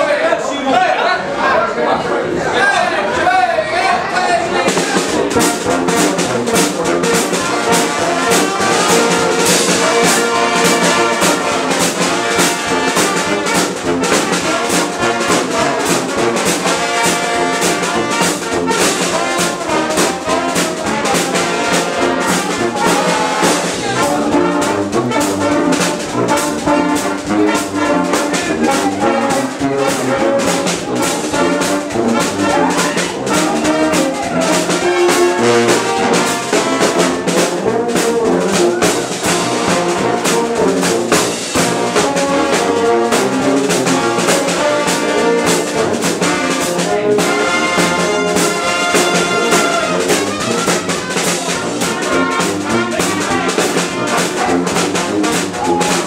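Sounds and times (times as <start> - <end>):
brass street band playing: 2.2 - 56.0
steady drum beat: 4.4 - 56.0.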